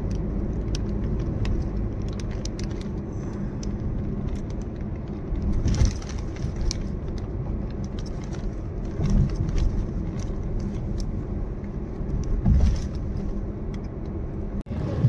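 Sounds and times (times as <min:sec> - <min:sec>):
car road noise rumble: 0:00.0 - 0:15.0.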